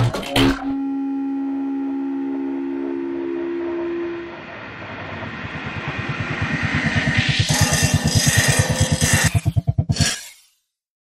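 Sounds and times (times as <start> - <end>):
faint low pulse: 0.7 - 7.6
horn-like held chord: 0.8 - 5.1.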